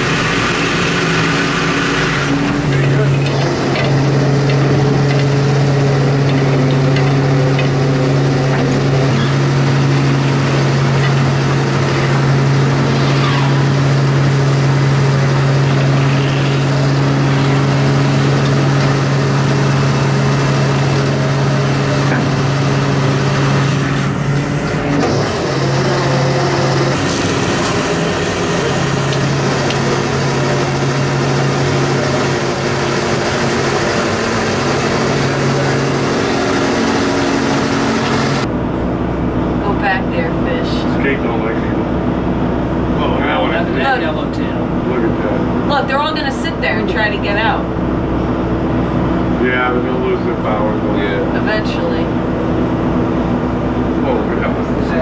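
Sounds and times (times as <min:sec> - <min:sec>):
diesel engine droning: 0:00.0 - 0:55.0.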